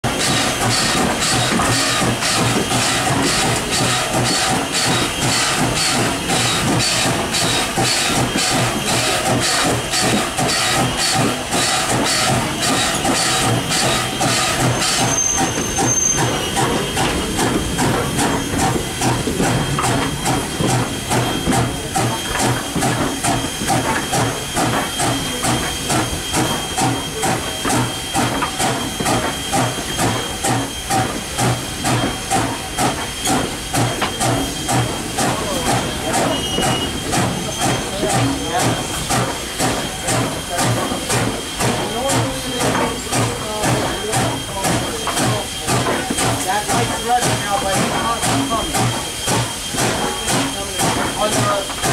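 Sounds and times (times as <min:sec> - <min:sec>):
steam locomotive exhaust chuffing: 0:00.0 - 0:51.9
steam hissing: 0:00.1 - 0:51.9.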